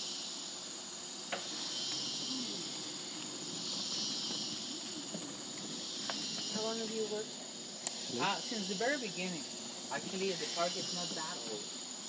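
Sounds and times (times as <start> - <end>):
insect chorus buzzing: 0.0 - 12.0
thin high whine: 1.4 - 12.0.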